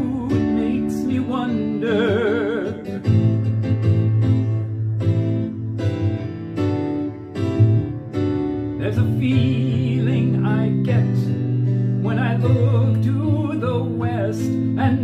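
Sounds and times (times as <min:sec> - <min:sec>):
bass line: 0:00.0 - 0:15.0
picked acoustic guitar: 0:00.0 - 0:15.0.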